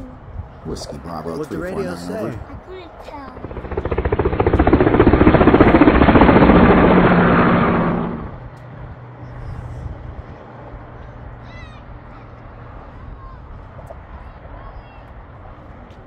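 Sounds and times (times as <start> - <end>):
helicopter rotor chop: 0.7 - 9.3.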